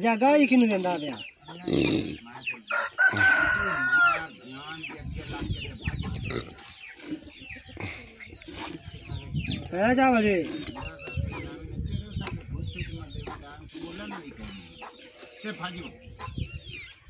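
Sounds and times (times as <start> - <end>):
chickens clucking: 0.1 - 17.0
rooster crowing: 2.7 - 4.3.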